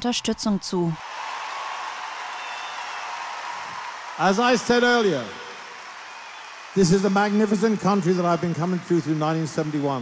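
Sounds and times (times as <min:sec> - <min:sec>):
audience applauding: 0:01.0 - 0:10.0.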